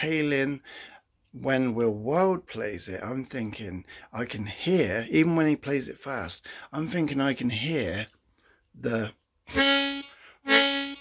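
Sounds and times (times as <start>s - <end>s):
harmonica held notes: 9.5s - 11.0s.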